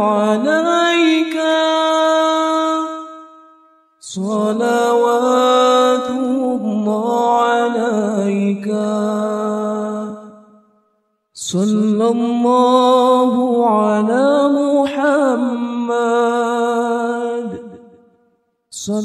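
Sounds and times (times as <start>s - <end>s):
person singing unaccompanied: 0.0s - 3.2s, 11.4s - 17.9s.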